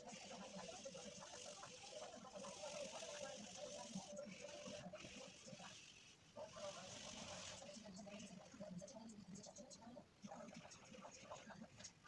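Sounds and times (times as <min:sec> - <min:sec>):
pencil scratching on paper: 0:00.1 - 0:08.5.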